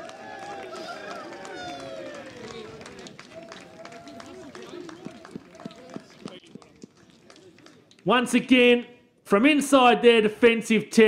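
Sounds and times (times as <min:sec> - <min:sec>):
distant players shouting: 0:00.0 - 0:06.4.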